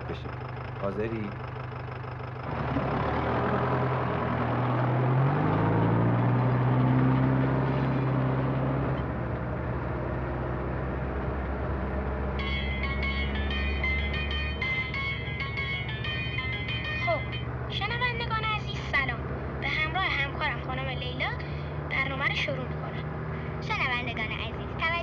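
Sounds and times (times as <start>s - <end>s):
van engine running: 0.0s - 25.0s
music with bright high notes: 12.4s - 17.4s.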